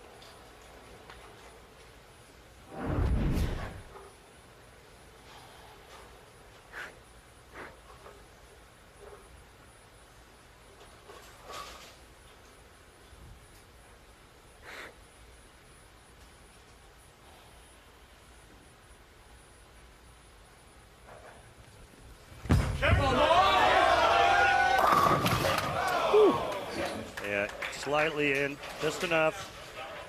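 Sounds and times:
bowling ball thud: 22.4s - 23.2s
crowd shouting and cheering: 22.8s - 27.2s.

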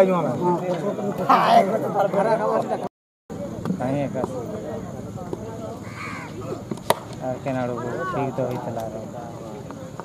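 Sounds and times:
cricket bat striking ball: 6.3s - 7.2s.

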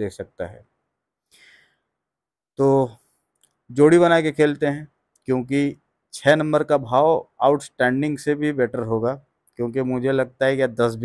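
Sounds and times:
man speaking: 0.0s - 0.6s, 2.6s - 3.0s, 3.7s - 11.0s
man breathing in: 1.3s - 1.9s.

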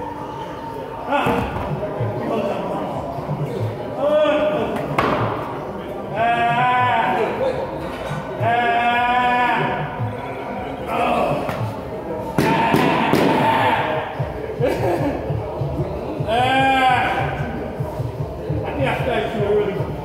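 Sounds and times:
gym music bass beat: 11.2s - 20.0s.

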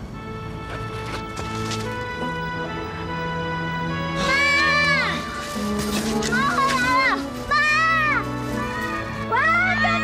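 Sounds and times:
soft background music: 0.0s - 10.0s
child calling high-pitched: 4.2s - 10.0s.

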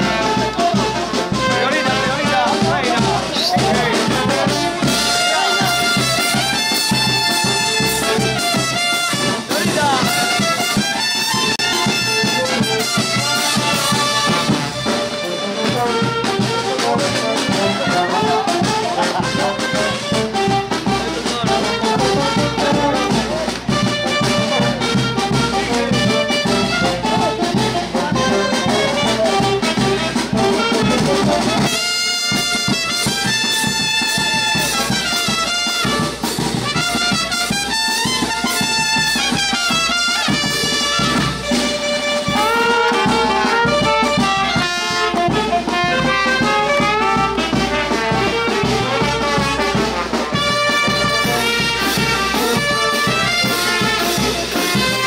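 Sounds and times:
bass drum: 0.0s - 55.0s
trumpets and trombones playing: 0.0s - 55.0s.

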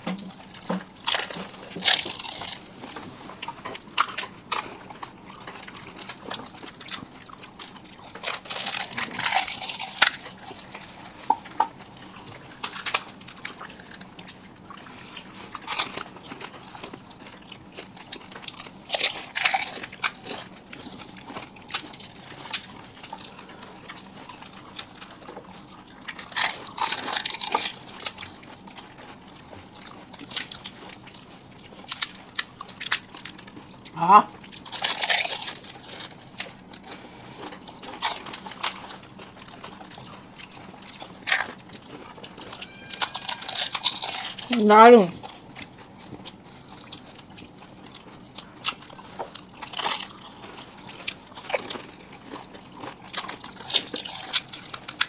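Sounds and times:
fried shells crunching: 0.0s - 55.0s.

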